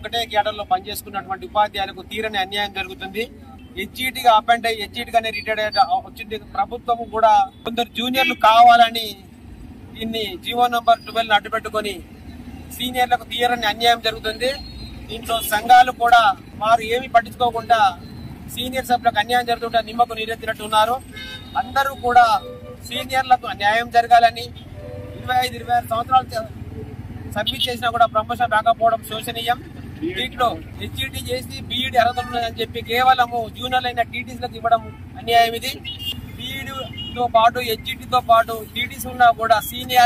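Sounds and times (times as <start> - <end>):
man speaking: 0.0 - 9.2, 12.8 - 24.5, 25.2 - 35.8, 36.4 - 40.0
street traffic: 0.0 - 40.0.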